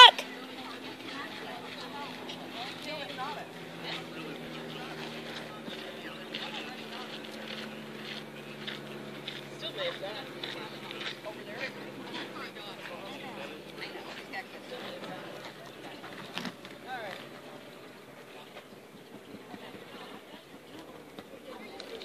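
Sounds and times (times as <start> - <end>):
background chatter: 0.0 - 22.0.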